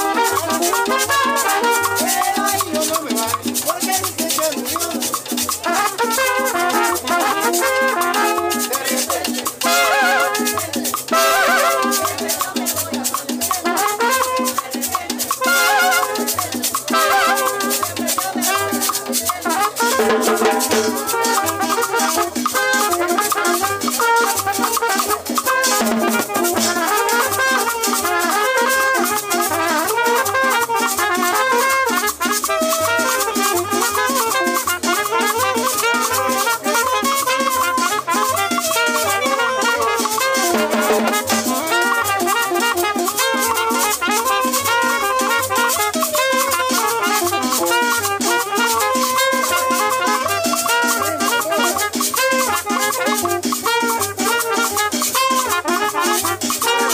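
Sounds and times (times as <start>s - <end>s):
upright bass: 0.0s - 22.6s
live cumbia band playing: 0.0s - 56.9s.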